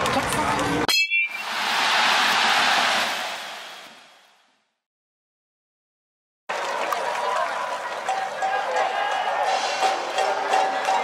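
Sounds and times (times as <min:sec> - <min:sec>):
stadium crowd applause and cheering: 0:01.3 - 0:04.2, 0:06.5 - 0:11.0.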